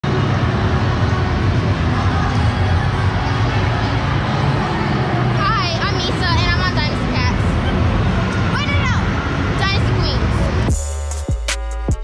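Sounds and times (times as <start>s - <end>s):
low rumbling convention hall din: 0.0s - 12.0s.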